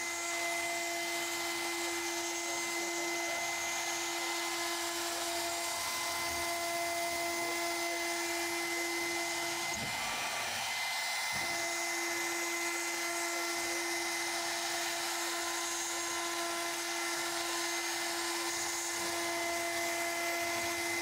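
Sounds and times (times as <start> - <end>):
router spindle whine: 0.0 - 21.0.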